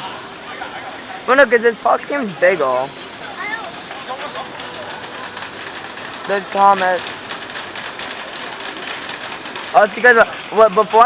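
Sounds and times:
roller coaster train clattering: 0:00.0 - 0:11.0.

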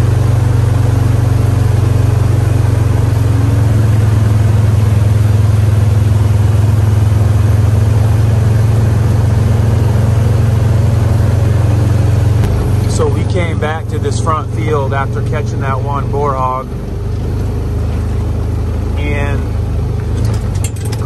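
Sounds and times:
vehicle engine running: 0:00.0 - 0:21.0.

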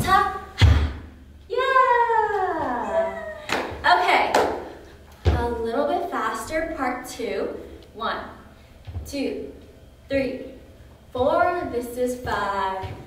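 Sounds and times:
woman's falling vocal call: 0:02.7 - 0:03.5
feet stomping thuds: 0:05.2 - 0:05.6.

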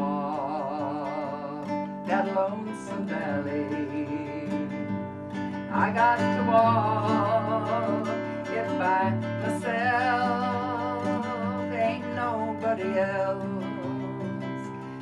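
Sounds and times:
strummed classical guitar: 0:00.0 - 0:15.0
woman singing with vibrato: 0:00.0 - 0:15.0.

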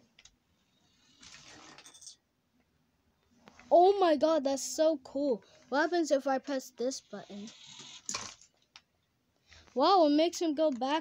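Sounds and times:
toy car motor whirring on wood: 0:00.9 - 0:01.8, 0:06.9 - 0:08.4.

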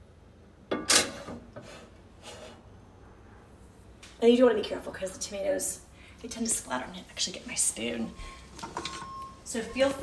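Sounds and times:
kitchen items clattering: 0:08.5 - 0:09.3.

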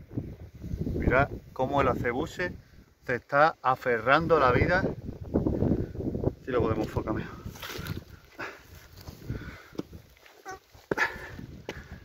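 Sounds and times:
light wind: 0:00.0 - 0:12.0
footsteps on rock and dry grass: 0:06.8 - 0:12.0
faint animal call: 0:10.4 - 0:10.7.

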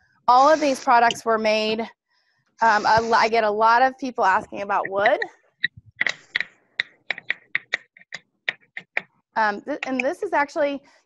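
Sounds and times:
keyboard typing: 0:04.8 - 0:09.0.

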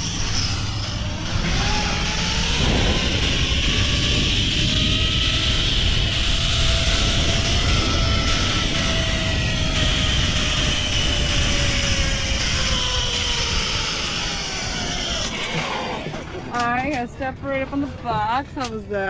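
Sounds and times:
wind rushing: 0:00.0 - 0:16.1
zipline trolley whirring whine: 0:00.0 - 0:19.0.

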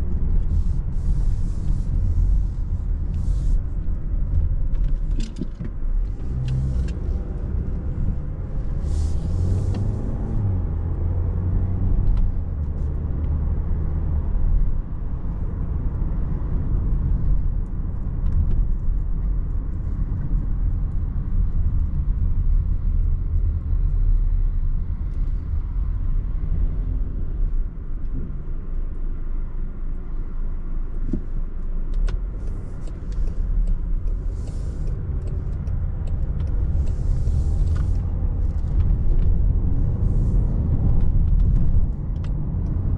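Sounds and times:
car engine and road noise: 0:00.0 - 0:42.9.

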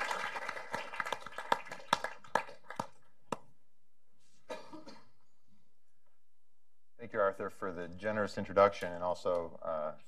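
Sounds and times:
applause: 0:00.0 - 0:03.2.

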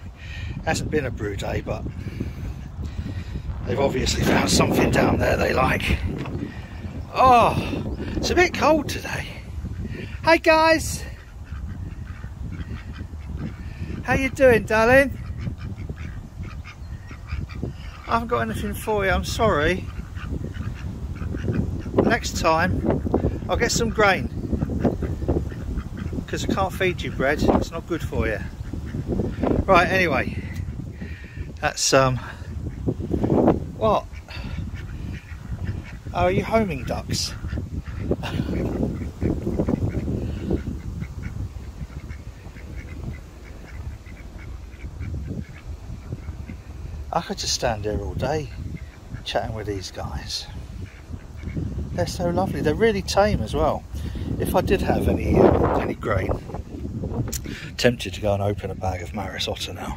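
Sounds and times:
ducks quacking softly: 0:00.0 - 0:59.9
low rumble: 0:01.8 - 0:08.4.

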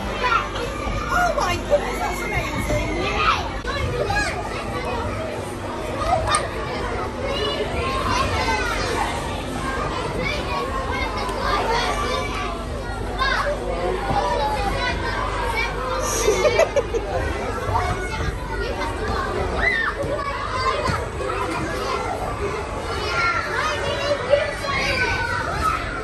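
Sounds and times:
children's voices chattering: 0:00.0 - 0:26.0.

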